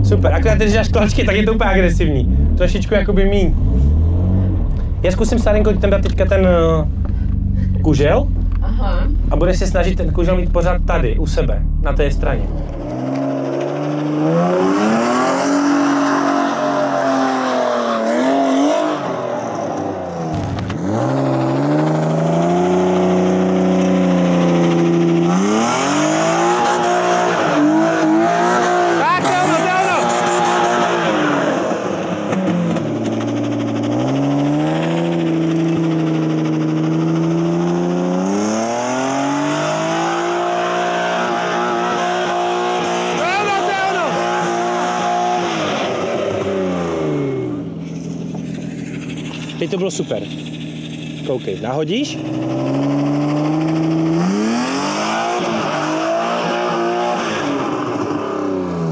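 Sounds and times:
car engine revving hard: 0.0s - 51.2s, 52.1s - 58.9s.

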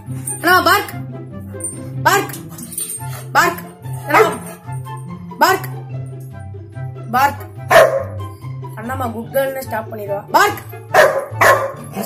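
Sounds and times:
background music: 0.0s - 12.0s
dog barking: 4.1s - 4.6s, 7.7s - 8.3s, 10.9s - 12.0s.

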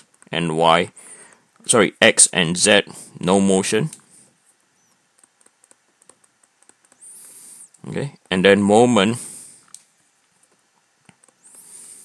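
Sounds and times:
pen tapping on touchscreen: 4.9s - 7.4s.

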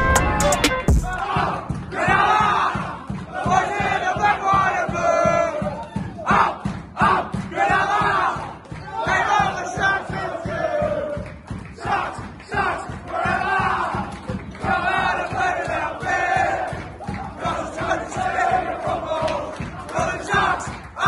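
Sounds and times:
group shouting and chanting: 0.0s - 21.0s.

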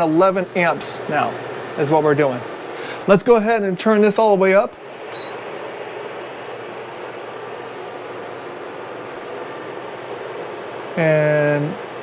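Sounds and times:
fan heaters whirring hiss: 0.0s - 12.0s
cooktop button beep: 5.1s - 5.4s.

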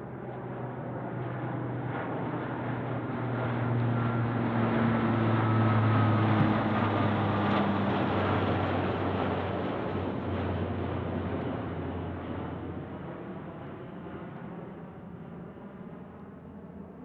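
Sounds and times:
propeller plane flying overhead: 0.0s - 17.0s.

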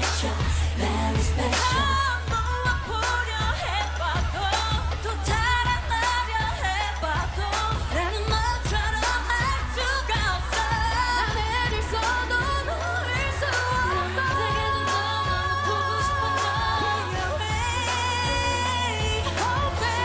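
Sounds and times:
pop backing track with beat: 0.0s - 20.0s
women singing into microphones: 0.0s - 20.0s.

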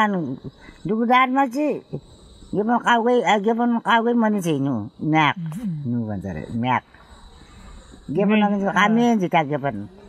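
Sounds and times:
elderly woman speaking: 0.0s - 6.9s, 8.1s - 9.9s
insects chirring: 0.0s - 10.0s.

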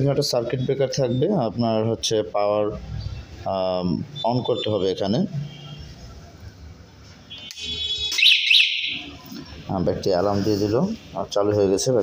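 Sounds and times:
electric bike alarm: 7.6s - 9.2s.

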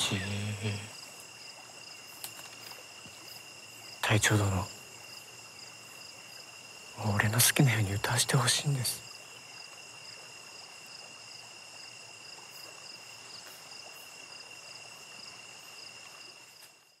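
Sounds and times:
high-pitched insect trill: 0.0s - 17.0s
insect chirps: 0.0s - 17.0s.

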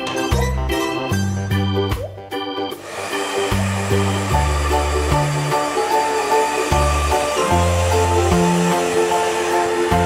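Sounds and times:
background music with organ chords: 0.0s - 10.0s
hair dryer blowing: 2.7s - 10.0s.

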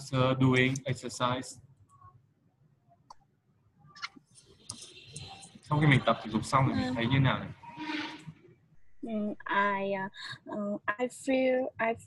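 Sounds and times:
person making hesitation sound: 0.0s - 1.4s, 5.2s - 7.5s.

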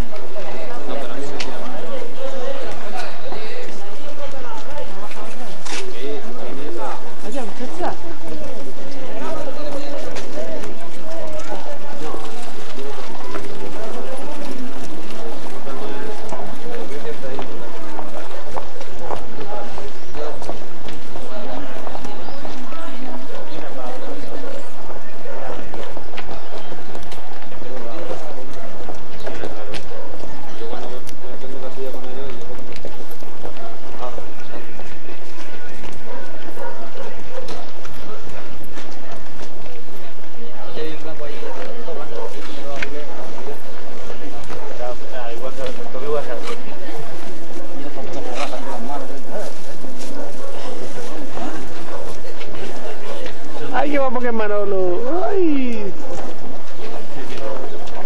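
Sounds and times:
crowd chatter: 0.0s - 58.0s.

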